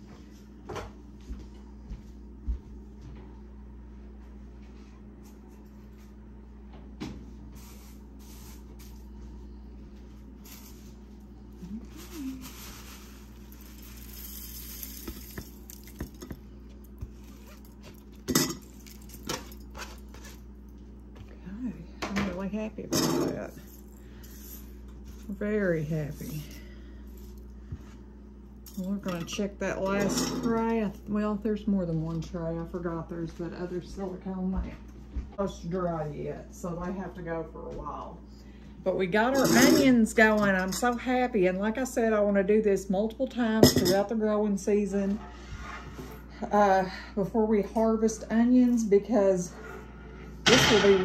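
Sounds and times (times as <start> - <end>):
steady low hum: 0.0 - 51.0
dried onion tops rustling: 11.7 - 16.3.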